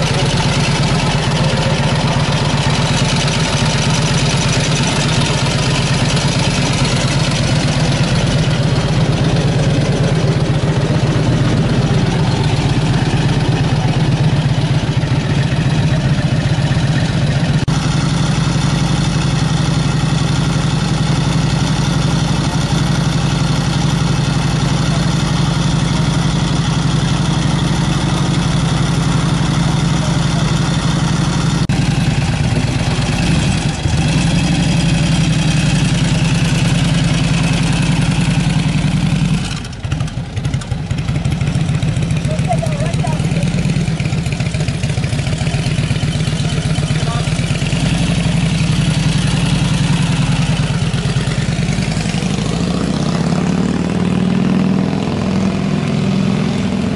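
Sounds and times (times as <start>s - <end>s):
motorcycle engine idling: 0.0s - 56.9s.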